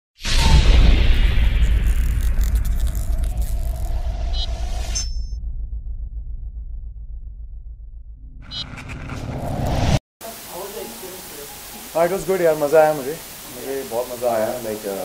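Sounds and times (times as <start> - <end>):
rising whoosh: 0.2 - 10.0
deep rumble: 0.3 - 10.0.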